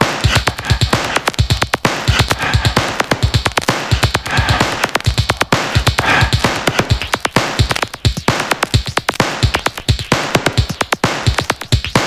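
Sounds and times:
electronic dance music: 0.0 - 12.0
kick-drum beat: 0.0 - 12.0.

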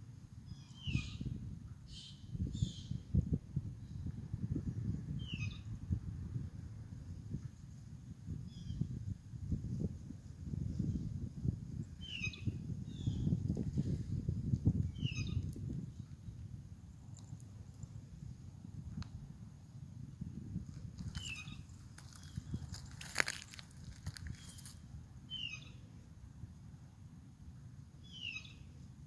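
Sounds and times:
bird chirping: 25.3 - 25.8, 28.0 - 28.7.

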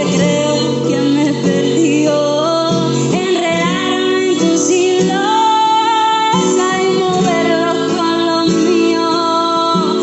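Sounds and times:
classical guitar: 0.0 - 10.0
woman singing: 0.0 - 10.0.

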